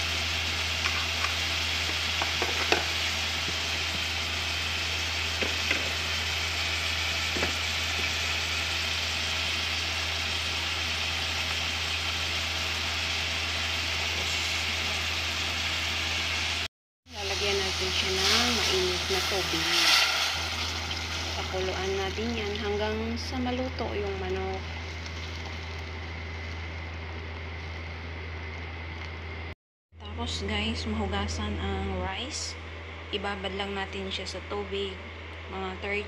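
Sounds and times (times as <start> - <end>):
chicken sizzling in a metal pot: 0.0 - 26.9.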